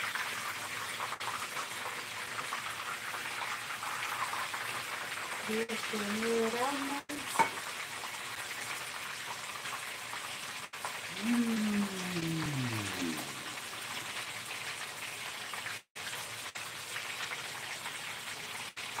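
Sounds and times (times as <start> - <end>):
food sizzling in oil: 0.0 - 19.0
woman's voice gliding down: 11.1 - 13.6.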